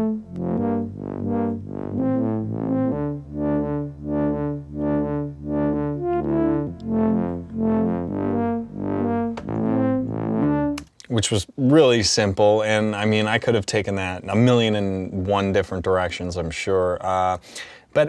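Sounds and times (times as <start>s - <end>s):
low bass line: 0.0s - 10.9s
synthesizer melody: 0.0s - 10.9s.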